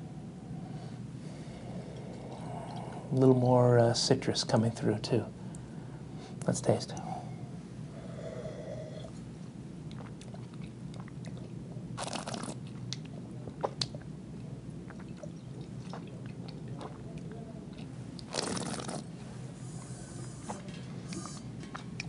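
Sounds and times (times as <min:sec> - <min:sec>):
wet mouth clicks: 0:09.9 - 0:14.1, 0:18.2 - 0:19.0
hissing slurps: 0:12.0 - 0:12.6, 0:18.3 - 0:19.1.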